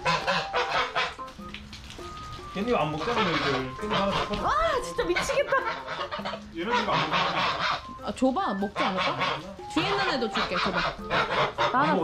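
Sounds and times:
geese honking: 0:00.0 - 0:01.4, 0:02.6 - 0:12.0.

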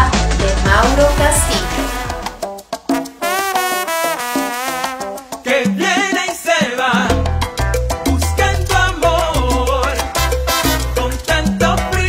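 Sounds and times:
salsa song: 0:00.0 - 0:12.0
solo trombone melody: 0:01.1 - 0:05.4, 0:10.2 - 0:11.1.

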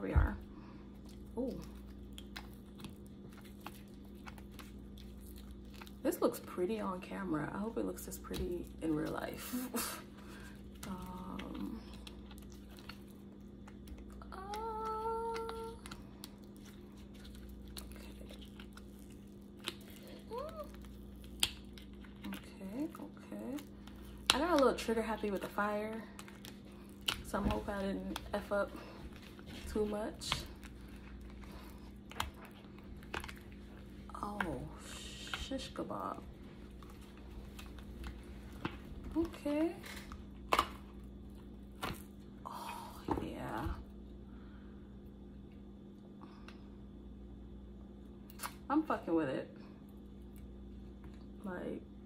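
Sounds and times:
steady low hum: 0:00.0 - 0:52.0
person humming: 0:14.2 - 0:15.9.

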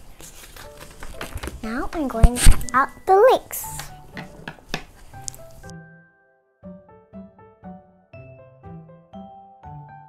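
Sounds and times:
background music: 0:00.2 - 0:10.0.

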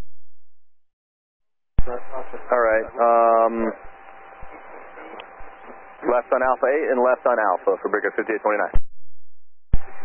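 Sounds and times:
radio channel hiss: 0:01.8 - 0:08.8.

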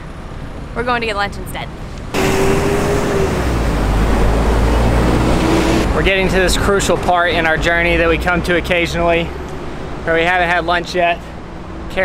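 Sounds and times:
city street traffic: 0:00.0 - 0:12.0
vehicle engine hum: 0:00.0 - 0:12.0.

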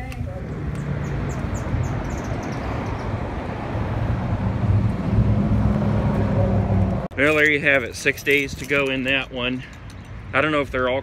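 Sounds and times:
vehicle engine humming: 0:00.0 - 0:10.4.

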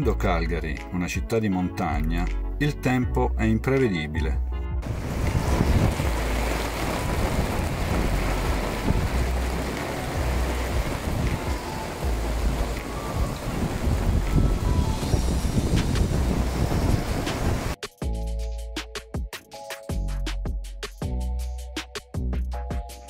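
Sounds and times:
steady rain: 0:04.8 - 0:17.8
wind buffeting microphone: 0:04.8 - 0:17.8.

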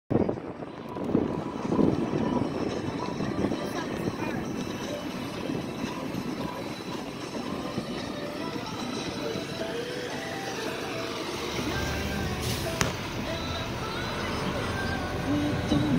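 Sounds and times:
vehicles running: 0:00.1 - 0:15.9
indistinct voices: 0:00.2 - 0:15.9.

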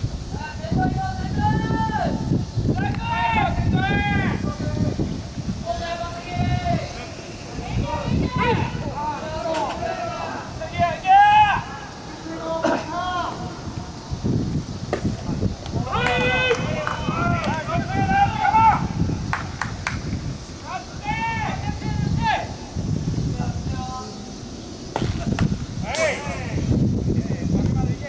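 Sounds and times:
players shouting calls: 0:00.2 - 0:28.0.

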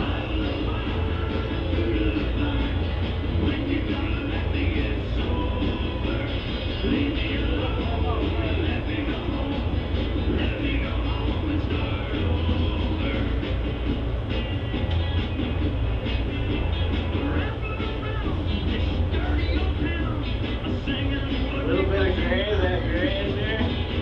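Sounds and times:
rock and roll music from radio: 0:00.0 - 0:24.0
steady low hum: 0:00.0 - 0:24.0.

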